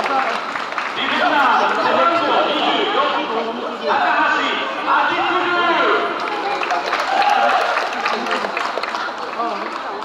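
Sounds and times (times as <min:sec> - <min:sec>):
public address announcer voice: 0:01.0 - 0:06.5.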